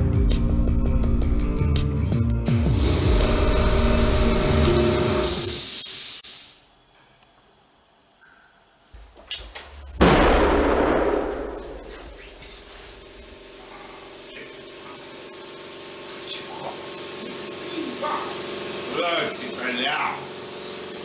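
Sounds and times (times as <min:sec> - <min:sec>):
steady hum: 0:09.0 - 0:20.2
bottle bursting bang: 0:10.0 - 0:12.2.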